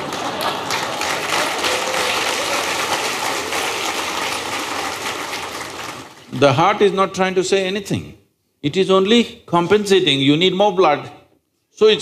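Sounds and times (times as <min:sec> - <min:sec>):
audience laughing: 0:00.0 - 0:04.9
audience clapping: 0:00.0 - 0:06.6.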